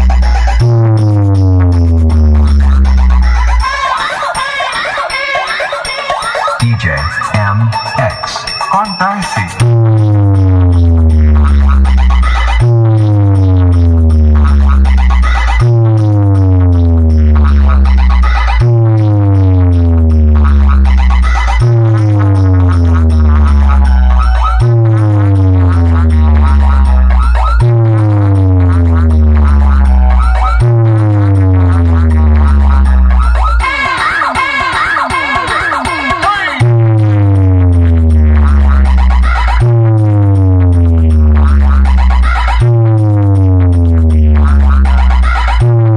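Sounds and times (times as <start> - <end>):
bass sweep falling in pitch: 0.0 - 3.4, 9.6 - 33.6, 36.6 - 45.9
warbling electronic tones: 5.6 - 33.7.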